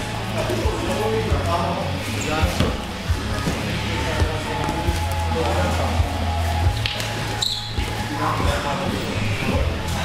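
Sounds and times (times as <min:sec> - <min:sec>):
background music: 0:00.0 - 0:10.0
voices: 0:00.0 - 0:10.0.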